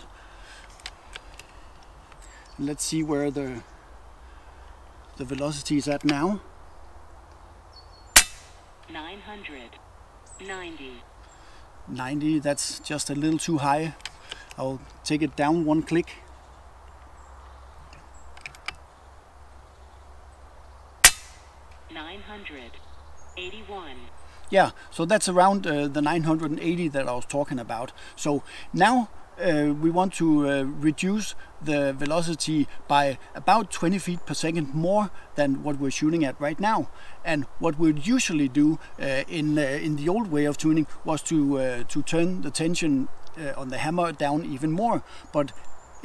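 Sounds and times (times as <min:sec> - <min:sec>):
air rifle shot: 0:08.2 - 0:08.6, 0:21.0 - 0:21.5
voice through phone speaker: 0:08.9 - 0:09.8, 0:10.4 - 0:11.0, 0:21.9 - 0:22.8, 0:23.4 - 0:24.1.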